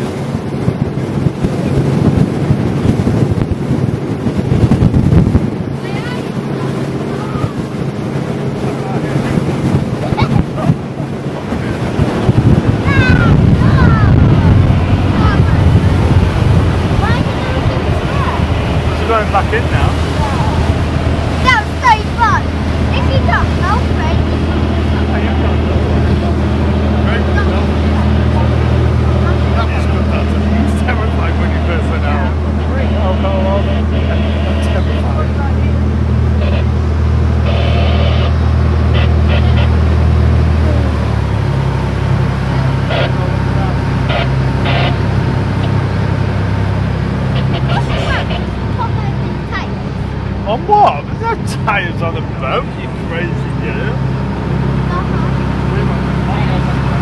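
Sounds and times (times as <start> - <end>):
speedboat engine running: 0.0 - 57.0.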